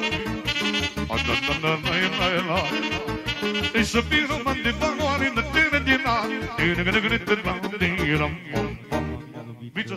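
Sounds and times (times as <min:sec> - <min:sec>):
saxophone melody: 0:00.0 - 0:06.5
keyboard bass beat: 0:00.0 - 0:09.9
man singing: 0:00.0 - 0:09.9.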